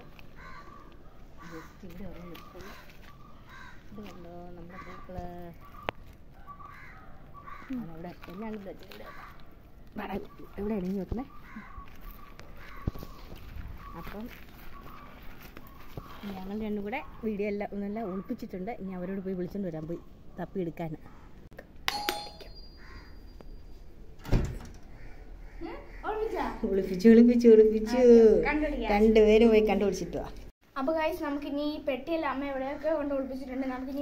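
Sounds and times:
bird calling: 0.0s - 20.4s, 22.4s - 23.8s, 24.8s - 27.0s
thin ringing tone: 21.9s - 23.7s.

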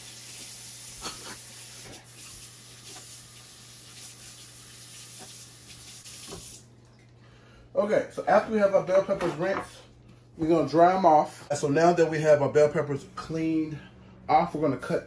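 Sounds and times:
faucet running into sink: 1.5s - 6.6s.

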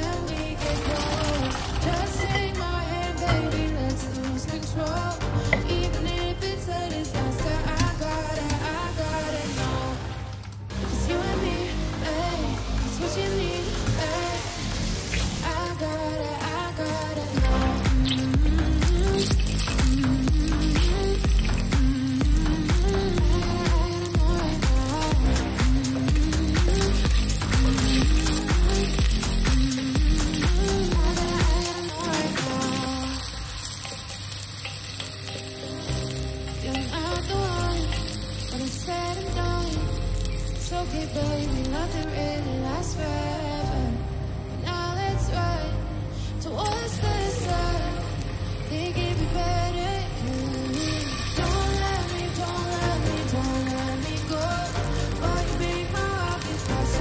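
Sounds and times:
onion and garlic sizzling in oil: 0.0s - 3.6s, 13.1s - 41.8s, 46.6s - 57.0s
background pop music: 0.0s - 57.0s.

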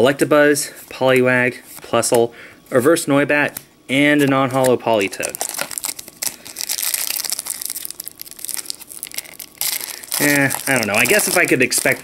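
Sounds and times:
foil wrapper crinkling: 4.6s - 12.0s.

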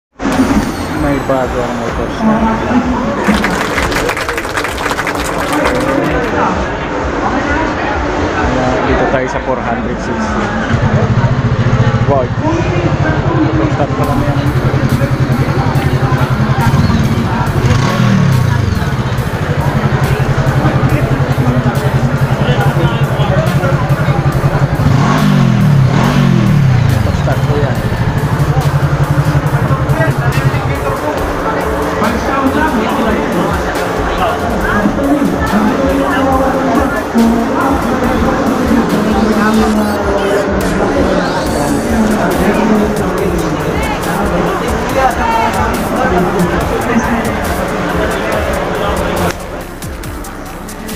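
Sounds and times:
voices chattering: 0.2s - 50.9s
crowd clapping: 3.2s - 6.5s
motorcycle engine idling and revving: 5.9s - 50.9s.

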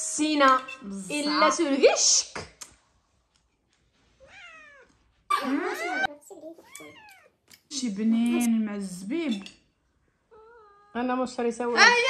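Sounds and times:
cat meowing: 4.2s - 7.4s, 10.3s - 11.2s.

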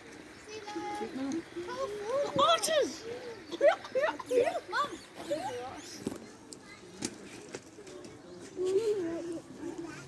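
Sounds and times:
laughter: 3.5s - 4.8s.

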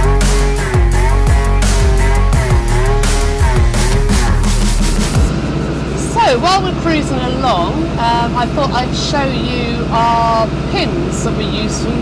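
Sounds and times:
loud music: 0.0s - 8.1s
boat engine humming: 0.0s - 12.0s
person talking: 5.9s - 12.0s.

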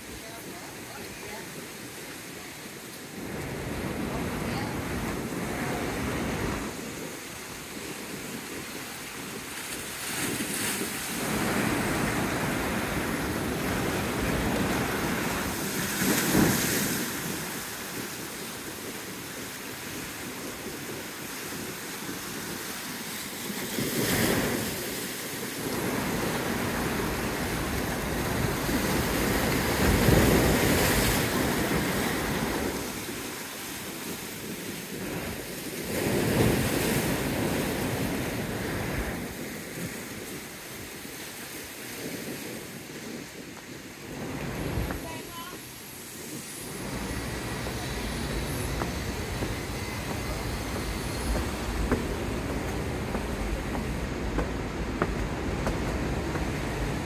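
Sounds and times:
waves breaking on rocks: 0.0s - 57.0s.

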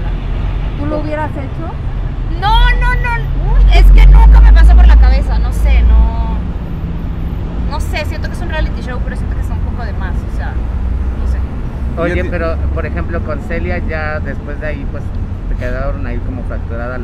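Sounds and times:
loud motor vehicle rumble: 0.0s - 17.0s
low vehicle hum: 0.0s - 17.0s
people talking: 0.8s - 6.4s, 12.0s - 15.0s.

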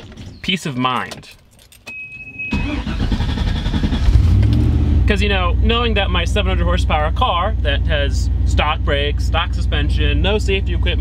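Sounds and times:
car engine rumbling: 1.0s - 11.0s.

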